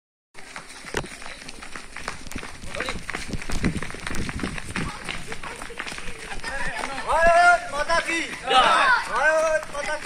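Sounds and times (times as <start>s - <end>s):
footfalls on dirt road: 0.4s - 10.0s.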